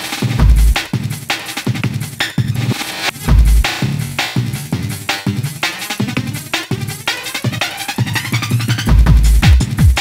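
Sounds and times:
fast chopped breakbeat drums: 0.0 - 10.0
deep sub-bass note: 0.4 - 0.8, 3.2 - 4.2.

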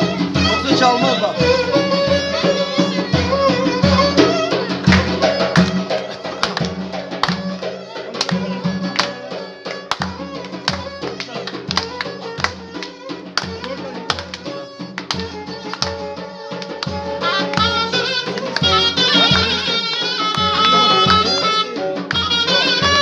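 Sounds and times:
reed instrument melody: 0.0 - 23.0.

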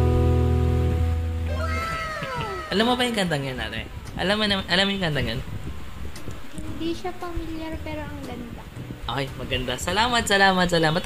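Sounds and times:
acoustic guitar chord ringing: 0.0 - 3.1
high voice exclamation: 1.4 - 3.3.

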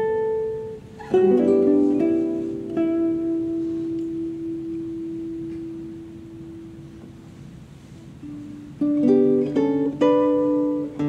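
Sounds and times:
plucked nylon guitar note ringing: 0.0 - 7.3, 8.1 - 11.0.

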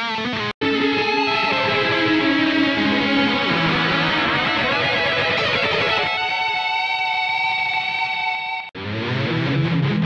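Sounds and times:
guitar chord ringing: 0.0 - 10.0
lower guitar passage: 0.1 - 10.0.

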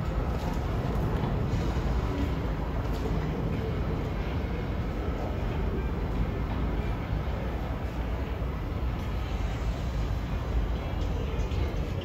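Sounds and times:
subway train rumbling: 0.0 - 12.0.

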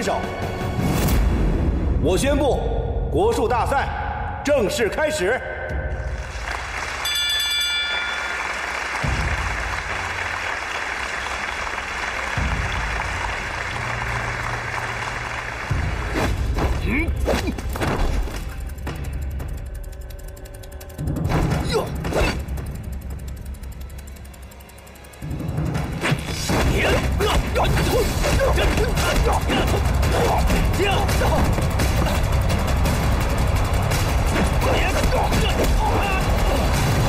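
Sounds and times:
dramatic film score with heavy beats: 0.0 - 7.0, 8.2 - 37.0.

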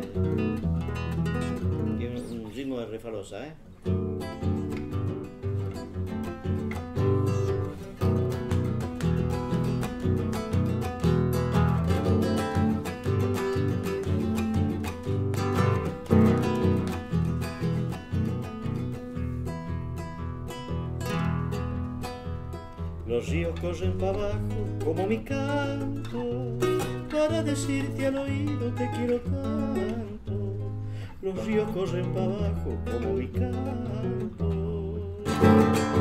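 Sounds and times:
classical guitar strumming chords: 0.0 - 36.0.

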